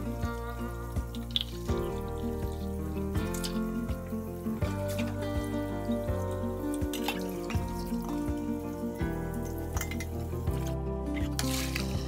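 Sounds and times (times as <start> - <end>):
background music with held notes: 0.0 - 12.0
bowl being rinsed by hand: 0.0 - 12.0
water splashing and dripping: 0.0 - 12.0.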